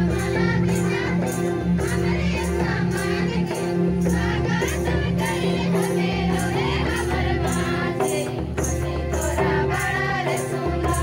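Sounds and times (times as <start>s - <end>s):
jingling percussion: 0.0s - 11.0s
women singing in chorus: 0.0s - 11.0s.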